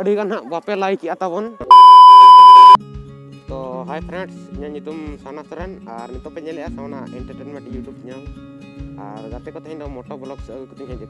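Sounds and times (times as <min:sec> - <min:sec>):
steady test-tone beep: 0:01.7 - 0:02.8
background music: 0:02.8 - 0:11.0.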